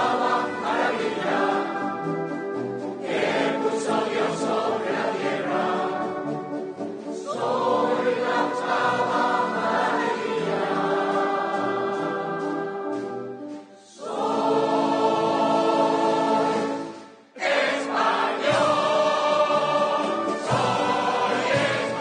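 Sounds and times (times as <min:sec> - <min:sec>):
concert wind band: 0:00.0 - 0:22.0
mixed choir singing: 0:00.0 - 0:22.0.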